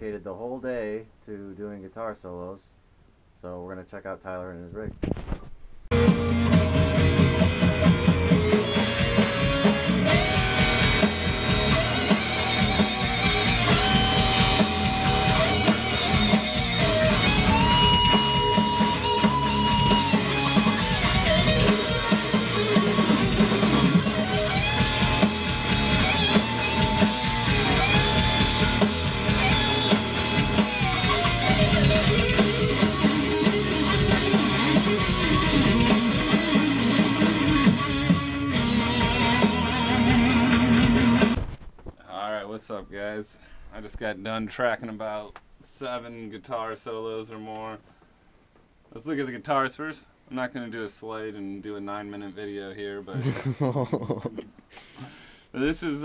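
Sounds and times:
electric guitar solo: 0:05.9 - 0:41.4
rock backing track with drums: 0:05.9 - 0:42.0.

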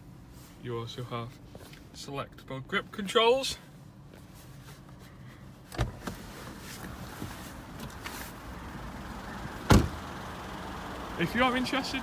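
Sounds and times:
car door shutting thump: 0:05.7 - 0:06.2, 0:09.6 - 0:10.0
car door latch click: 0:09.7 - 0:10.0.

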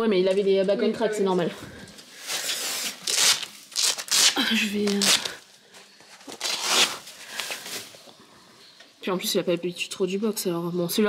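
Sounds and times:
velcro strap ripping: 0:02.2 - 0:05.4, 0:06.3 - 0:07.6.

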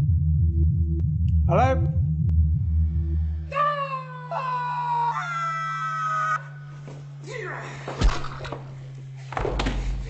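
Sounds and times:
steady low hum: 0:00.0 - 0:10.0
man screaming: 0:04.2 - 0:06.6.

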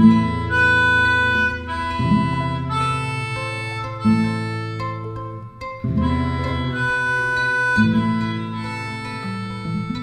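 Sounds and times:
instrumental music: 0:00.0 - 0:10.0.

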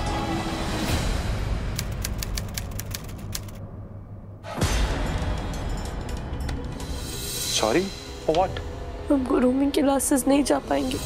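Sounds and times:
typewriter keys clacking: 0:01.8 - 0:03.6.

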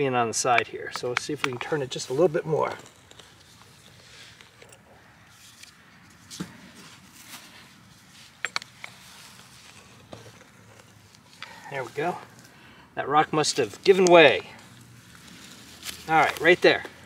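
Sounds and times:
sharp metal clicks: 0:00.4 - 0:01.9.

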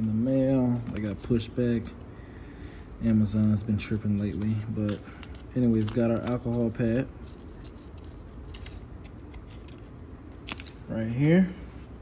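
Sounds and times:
wrapper crinkling and crackling: 0:03.2 - 0:11.2.

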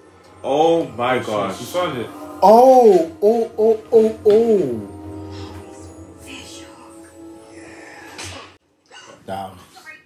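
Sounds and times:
film soundtrack music: 0:00.0 - 0:08.6.

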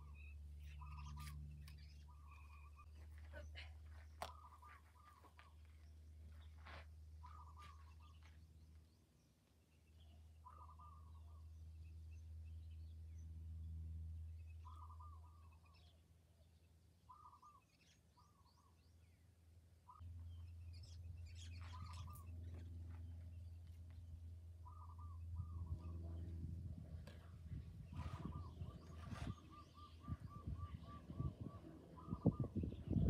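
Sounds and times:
small birds chirping: 0:00.0 - 0:13.4, 0:14.2 - 0:33.0
steady low hum: 0:00.0 - 0:33.0.

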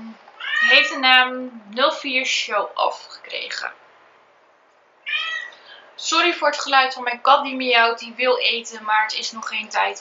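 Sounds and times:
cat meowing: 0:00.4 - 0:01.0, 0:05.0 - 0:05.6.

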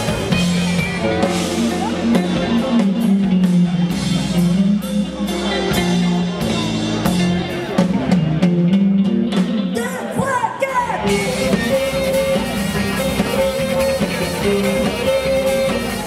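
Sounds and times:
bass guitar: 0:00.0 - 0:16.0
drum kit: 0:00.0 - 0:16.0
guitar: 0:00.0 - 0:16.0
flute notes: 0:11.1 - 0:16.0.

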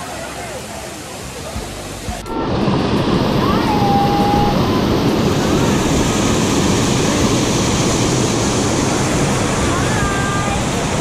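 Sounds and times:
waterfall rushing over boulders: 0:00.0 - 0:11.0.

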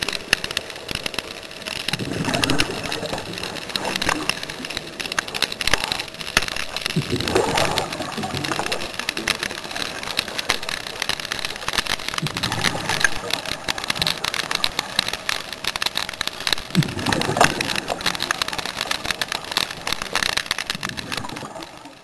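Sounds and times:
underwater clicks crackling: 0:00.0 - 0:22.0
exhaust bubbles: 0:01.9 - 0:11.0, 0:12.1 - 0:15.0, 0:16.6 - 0:18.5.

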